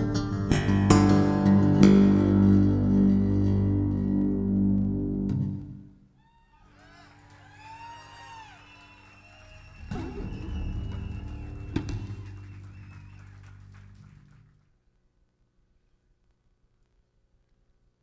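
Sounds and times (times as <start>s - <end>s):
electric bass guitar: 0.0s - 5.9s.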